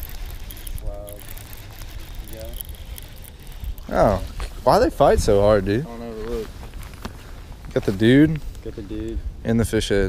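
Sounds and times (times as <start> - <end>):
wind rumble on microphone: 2.0 - 10.0.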